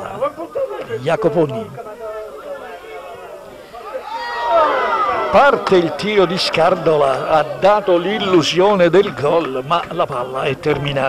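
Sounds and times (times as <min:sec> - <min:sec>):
man talking: 0:05.3 - 0:11.0.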